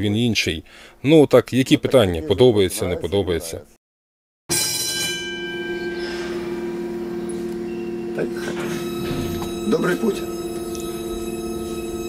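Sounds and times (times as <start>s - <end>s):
tram warning bell ringing: 4.5s - 12.0s
steady electrical hum: 5.4s - 12.0s.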